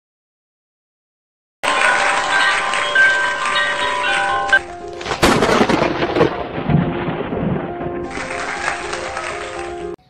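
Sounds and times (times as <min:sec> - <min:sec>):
shimmering chime tones: 0:01.6 - 0:05.0.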